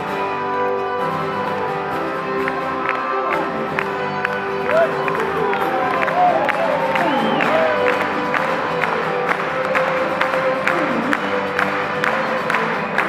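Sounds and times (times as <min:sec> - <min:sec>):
acoustic guitar strumming: 0:00.0 - 0:06.4
mandolin strumming: 0:07.7 - 0:13.0.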